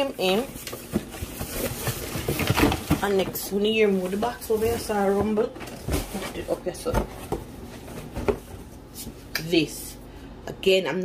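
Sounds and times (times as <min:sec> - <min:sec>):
rummaging in cardboard box: 0:00.0 - 0:09.2.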